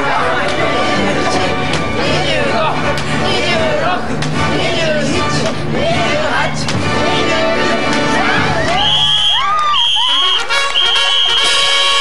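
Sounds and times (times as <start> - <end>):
group shouting and cheering: 0.0 - 11.6.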